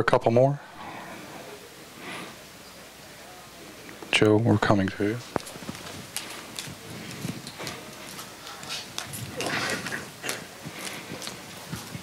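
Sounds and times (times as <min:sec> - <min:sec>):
rustling handling noise: 0:05.2 - 0:12.0
scuffing: 0:05.4 - 0:12.0.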